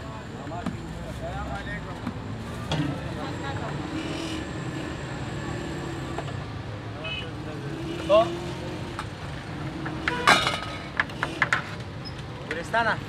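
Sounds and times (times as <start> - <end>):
people's voices: 0.0 - 6.3
road traffic: 0.0 - 13.0.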